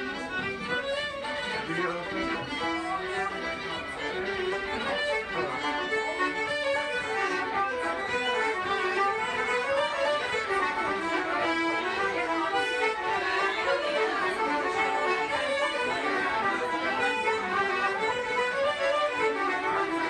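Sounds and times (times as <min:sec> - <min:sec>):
accordion: 0:00.0 - 0:20.0
banjo: 0:00.0 - 0:20.0
fiddles playing: 0:00.0 - 0:20.0.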